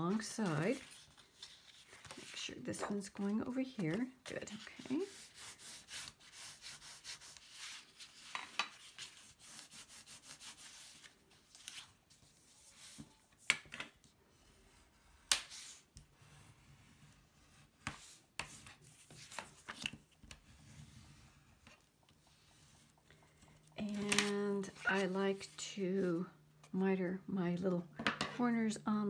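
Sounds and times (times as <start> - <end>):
paper rubbing and handling: 0.1 - 13.0, 23.9 - 26.1.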